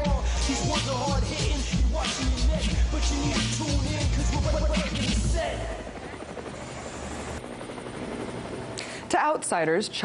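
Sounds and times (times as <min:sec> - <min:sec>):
hip-hop music with rapping: 0:00.0 - 0:05.8
noisy rumble: 0:00.0 - 0:07.4.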